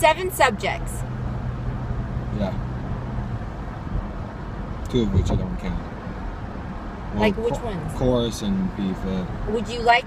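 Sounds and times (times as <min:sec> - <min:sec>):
car engine and road hum: 0:00.0 - 0:10.0.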